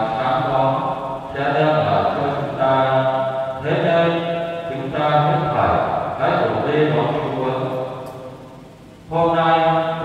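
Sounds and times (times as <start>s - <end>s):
man chanting into a microphone: 0.0s - 7.9s, 9.1s - 10.0s.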